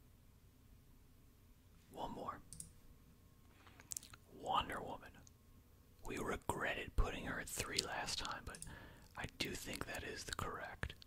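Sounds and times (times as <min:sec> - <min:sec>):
soft whispering: 0:01.8 - 0:02.6, 0:03.6 - 0:05.3, 0:06.0 - 0:11.0
computer mouse clicks: 0:02.5 - 0:02.7, 0:07.6 - 0:08.7.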